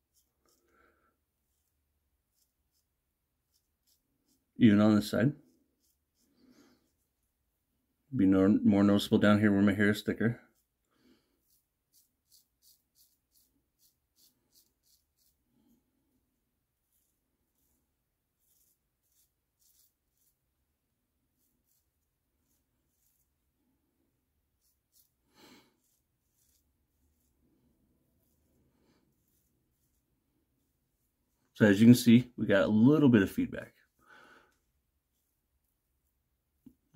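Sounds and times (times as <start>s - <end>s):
person breathing: 0.5s - 1.3s, 6.2s - 7.0s, 10.8s - 11.6s, 25.2s - 26.0s, 27.3s - 29.2s, 33.8s - 34.8s
safety razor scraping stubble: 11.4s - 15.4s, 18.4s - 20.4s, 24.6s - 25.2s.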